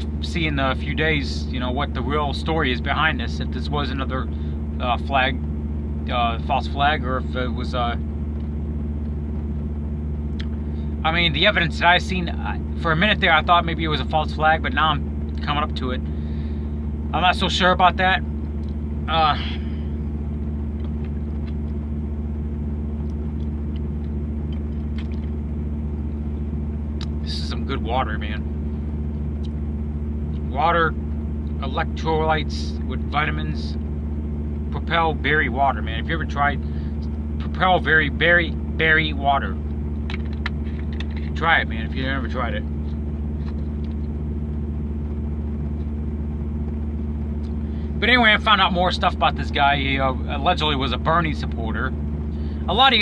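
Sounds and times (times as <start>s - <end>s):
truck engine idling: 0.0s - 53.0s.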